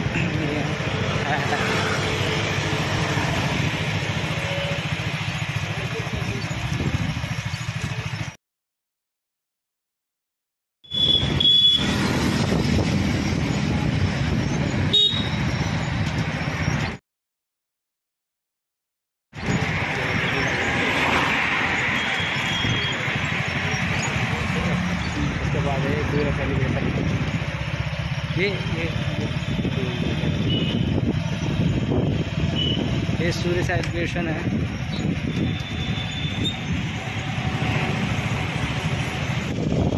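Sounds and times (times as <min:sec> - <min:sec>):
road traffic rumble: 0:00.0 - 0:08.4, 0:10.9 - 0:17.0, 0:19.4 - 0:39.9
short car horn beeps: 0:10.8 - 0:12.0, 0:14.9 - 0:15.5.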